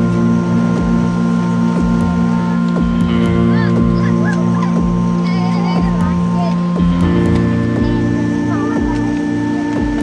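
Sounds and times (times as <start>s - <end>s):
low falling-pitch drum hits: 0.0s - 10.0s
sustained drone chord: 0.0s - 10.0s.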